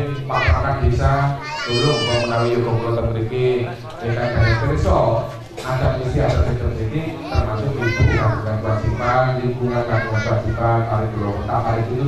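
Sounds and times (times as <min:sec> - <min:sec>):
people speaking: 0:00.0 - 0:12.0
child calling out: 0:01.3 - 0:03.0, 0:07.3 - 0:09.2, 0:09.8 - 0:10.6.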